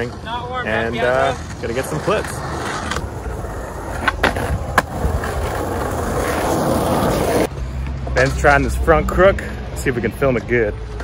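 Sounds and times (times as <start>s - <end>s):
skateboard wheels rolling on concrete: 0.0s - 11.0s.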